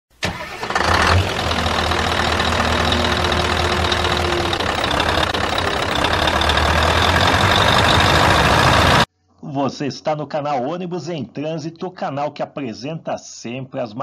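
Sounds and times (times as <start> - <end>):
engine starting and running: 0.1 - 9.1.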